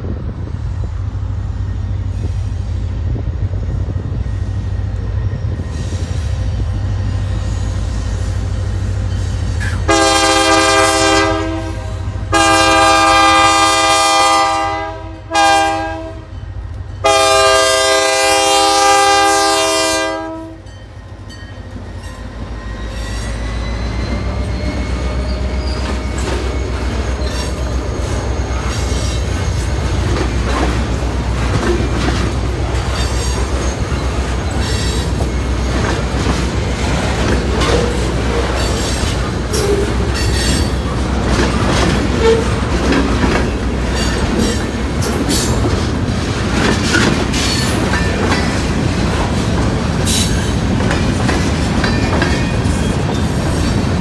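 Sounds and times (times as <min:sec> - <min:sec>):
train rumble: 0:00.0 - 0:54.0
locomotive air horn: 0:09.6 - 0:16.3, 0:17.0 - 0:20.7, 0:42.1 - 0:42.6
train wheels clicking over rail joints: 0:20.8 - 0:54.0.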